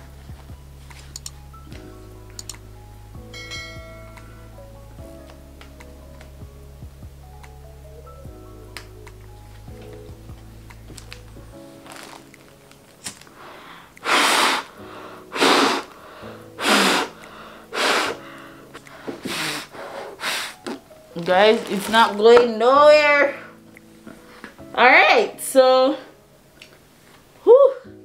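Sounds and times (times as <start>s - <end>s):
soft background music: 0.0s - 28.0s
forceful breath puffs through mask: 13.3s - 20.7s.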